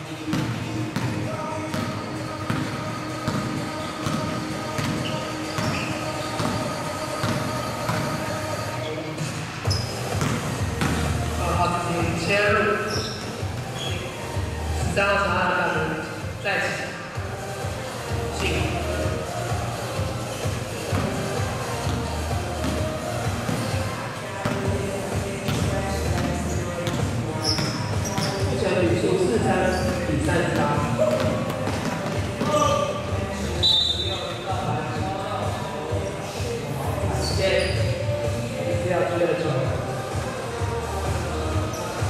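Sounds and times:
music: 0.0s - 42.0s
basketball bouncing on court: 0.3s - 8.3s, 9.7s - 11.7s, 20.9s - 33.0s.

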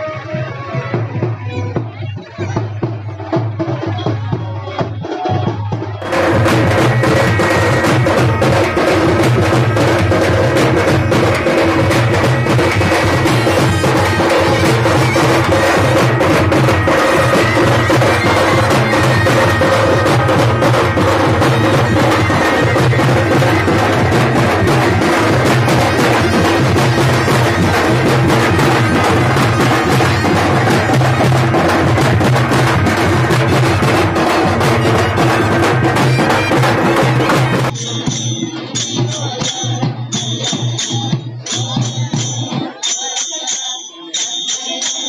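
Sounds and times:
frame drums beaten with sticks: 0.3s - 45.0s.

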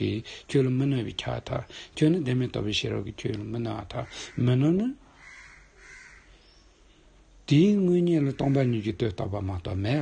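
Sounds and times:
faint bird calling: 4.0s - 7.0s.

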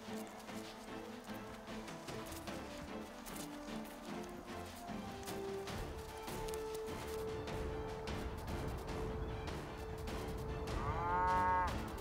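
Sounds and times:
background music with held tone: 0.0s - 12.0s
cow mooing: 10.8s - 11.8s.

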